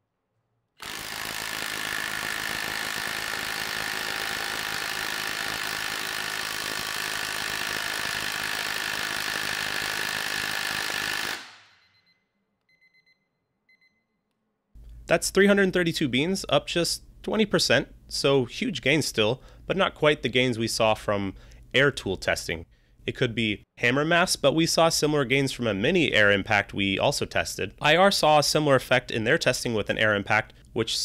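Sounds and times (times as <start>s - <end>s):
impact wrench hammering: 0.8s - 11.8s.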